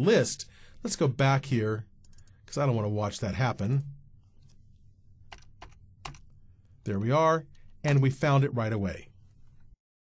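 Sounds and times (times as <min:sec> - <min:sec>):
low steady hum: 0:00.0 - 0:09.8.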